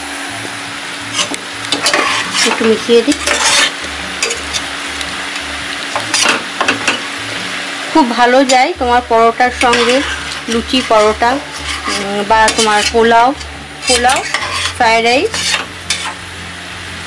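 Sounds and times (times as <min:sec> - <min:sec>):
curry sizzling in a pot: 0:00.0 - 0:17.0
spatula scraping a pot: 0:01.1 - 0:04.7, 0:09.5 - 0:16.2.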